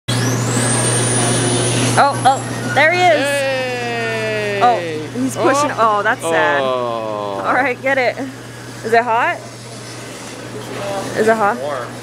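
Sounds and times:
thin high whine: 2.9s - 7.7s.

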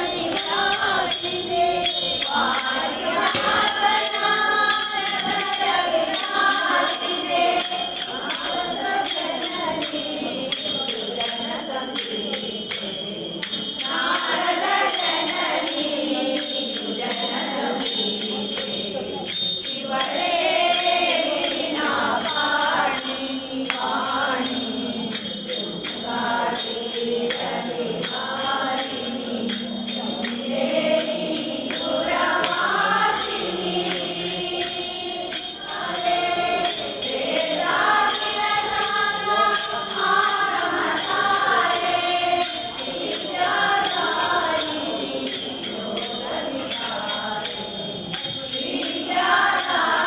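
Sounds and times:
small hand cymbals: 0.0s - 50.0s
steady percussive beat: 0.0s - 50.0s
women singing in unison: 0.0s - 50.0s.

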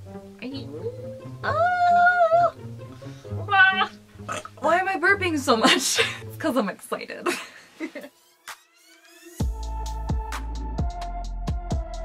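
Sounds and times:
quiet background music: 0.0s - 11.2s
woman burping: 3.4s - 4.7s.

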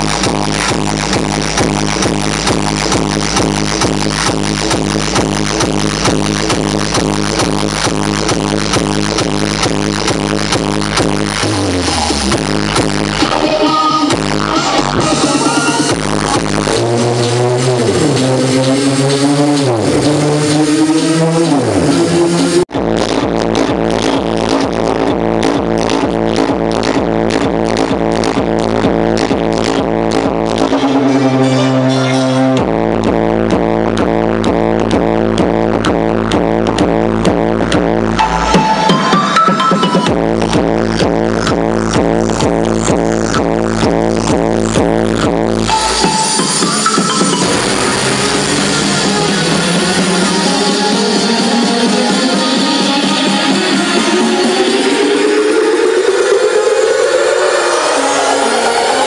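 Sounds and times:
electronic dance music: 0.0s - 59.0s.

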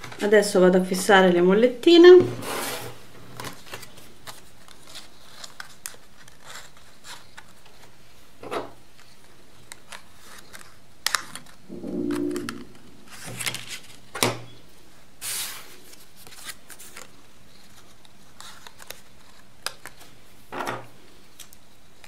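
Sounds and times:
brief low pitched sound: 11.7s - 13.6s.

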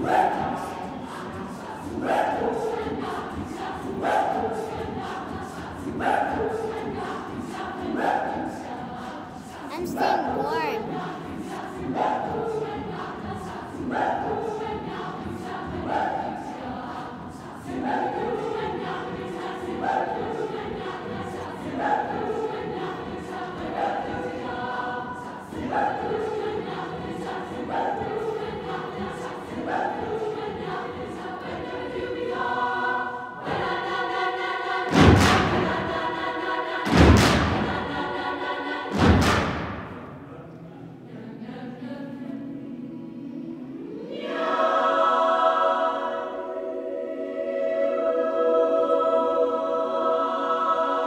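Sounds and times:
choir singing: 0.0s - 51.0s.

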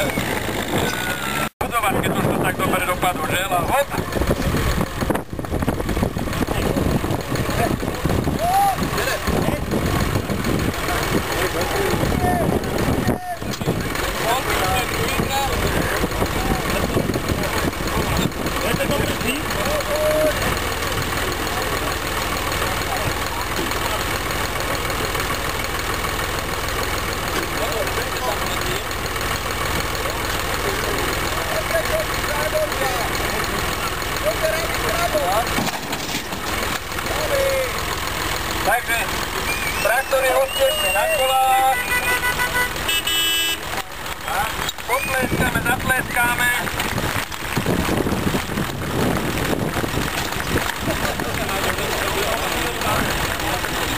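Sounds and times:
crowd talking and calling out: 0.0s - 53.9s
tractor engine idling: 0.0s - 53.9s.

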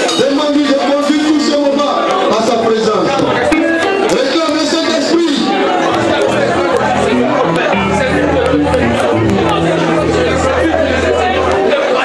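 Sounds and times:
man's voice over loudspeaker: 0.1s - 3.5s, 4.1s - 10.8s
live church band music: 0.1s - 12.0s.

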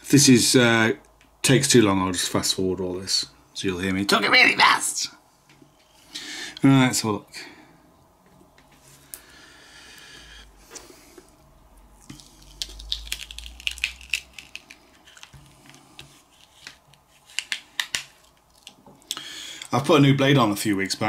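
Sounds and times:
vinyl peeling with crackling: 12.0s - 18.9s.

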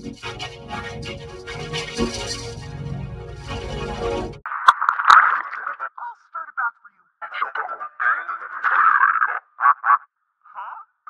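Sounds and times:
filtered cartoon voice: 4.7s - 11.0s.

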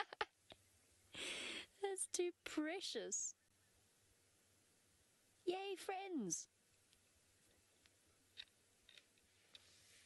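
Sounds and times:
faint background hiss: 0.0s - 10.0s.

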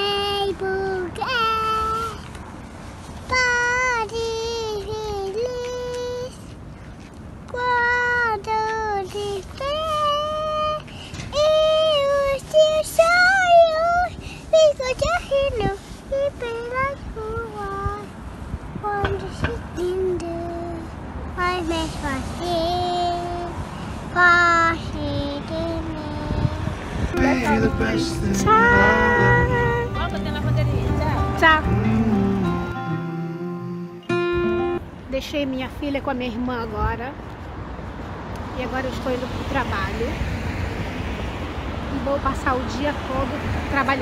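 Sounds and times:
girl singing held notes: 25.1s - 32.0s.

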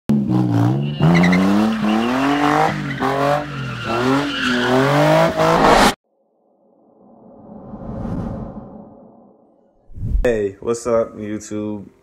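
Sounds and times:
car engines revving hard: 0.1s - 6.0s
tyre squeal: 0.6s - 5.8s.

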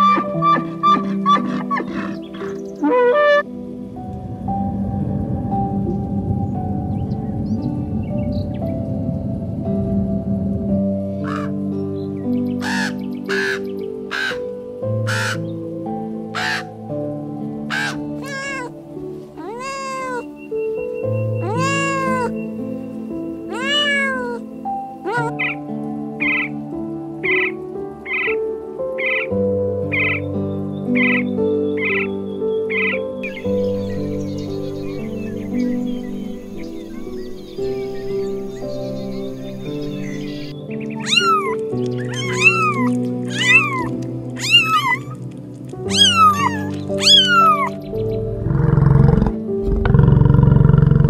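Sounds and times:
soft background music: 0.0s - 51.0s
short sharp animal calls: 12.6s - 14.4s, 15.1s - 15.4s, 17.7s - 18.7s, 41.0s - 45.2s
cat meowing: 15.1s - 15.4s, 16.4s - 16.6s, 17.7s - 18.7s, 19.4s - 20.3s, 21.4s - 22.4s, 23.5s - 25.3s, 41.0s - 45.2s, 45.9s - 47.8s.

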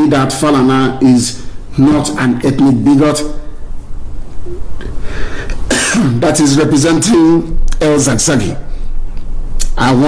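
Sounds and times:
man coughing: 5.6s - 6.3s.

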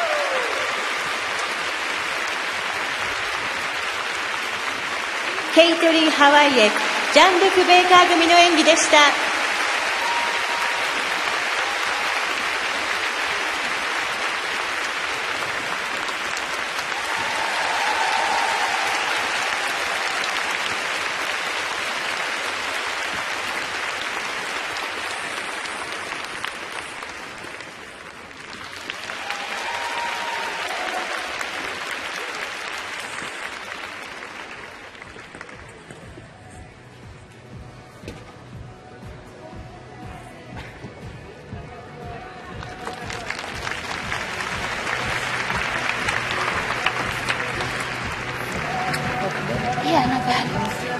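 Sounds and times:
crowd applauding: 0.0s - 36.7s, 41.9s - 50.9s.

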